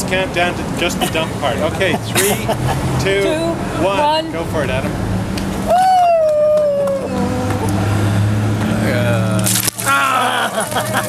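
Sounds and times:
ice water splashing: 0:09.4 - 0:11.0.

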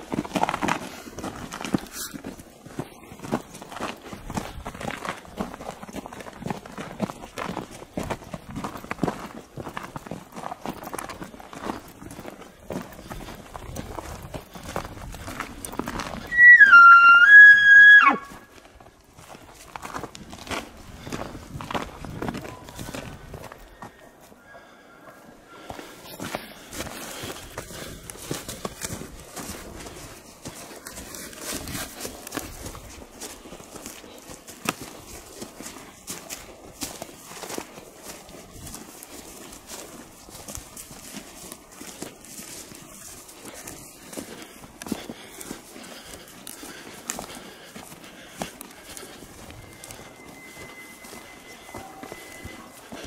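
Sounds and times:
footsteps crunching through snowy grass: 0:00.0 - 0:53.0
elk bugle whistle: 0:16.2 - 0:18.5, 0:49.6 - 0:52.8.

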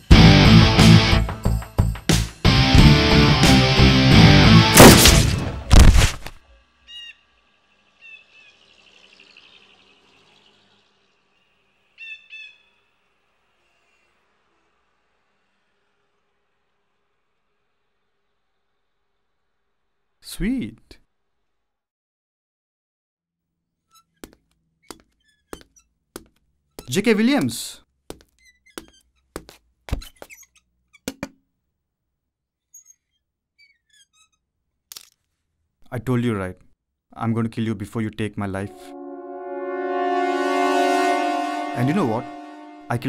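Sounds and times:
heavy thuds: 0:04.8 - 0:06.4
faint bird calls: 0:06.8 - 0:13.2
man's voice: 0:37.2 - 0:38.9.

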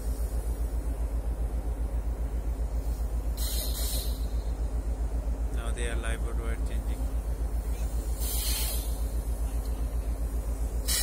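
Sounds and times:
low pulsing machinery rumble: 0:00.0 - 0:11.0.

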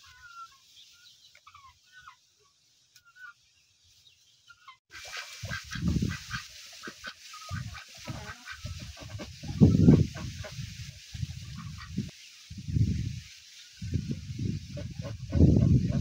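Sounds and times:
ducks quacking: 0:04.5 - 0:12.1, 0:14.6 - 0:16.0
steady outdoor hiss: 0:04.9 - 0:16.0.

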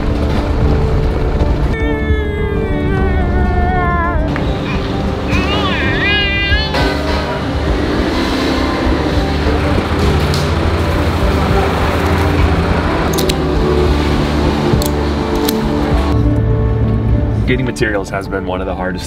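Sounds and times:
background music with sustained notes: 0:00.0 - 0:19.0
high wavering vocal: 0:01.8 - 0:07.0.

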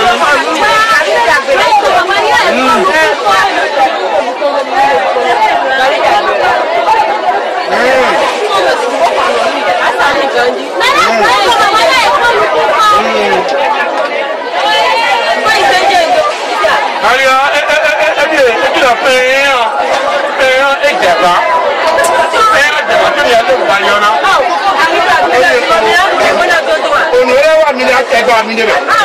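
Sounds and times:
people talking over one another: 0:00.0 - 0:29.0.

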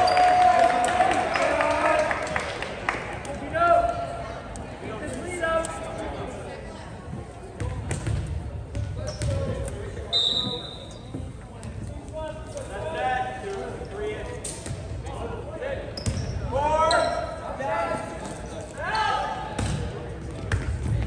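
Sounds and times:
volleyball bouncing on gym floor: 0:07.6 - 0:09.7
referee's whistle: 0:10.1 - 0:11.1.

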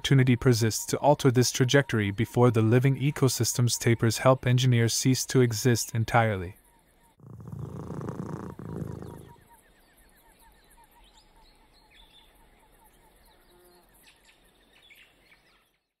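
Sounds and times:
faint bird chirps: 0:05.8 - 0:16.0.

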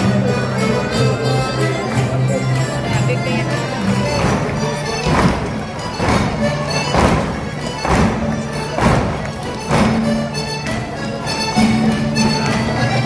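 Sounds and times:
live folk dance music: 0:00.0 - 0:13.0
strong beat thumps: 0:03.5 - 0:13.0.

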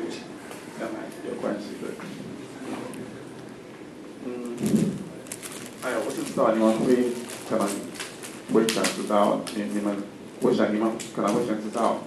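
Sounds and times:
man speaking into a microphone: 0:05.8 - 0:12.0.

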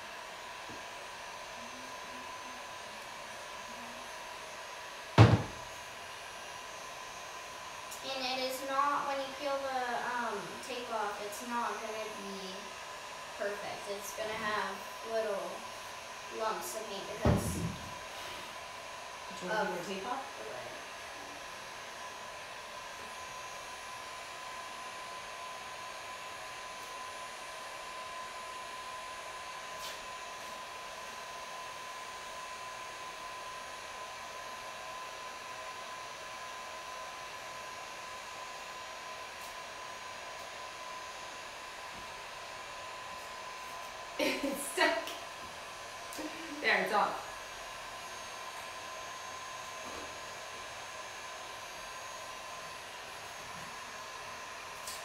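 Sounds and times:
heat gun whine: 0:00.0 - 0:55.0
person's voice: 0:07.9 - 0:12.7, 0:13.4 - 0:15.6, 0:16.3 - 0:17.6, 0:19.3 - 0:20.8, 0:46.2 - 0:47.3.

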